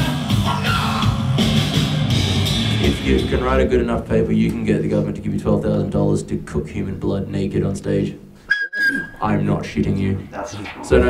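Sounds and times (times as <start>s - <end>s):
drum kit: 0.0s - 4.6s.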